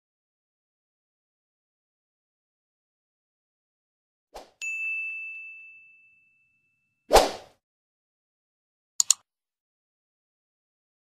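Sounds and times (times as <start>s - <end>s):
bright bell-like ding: 4.6s - 7.0s.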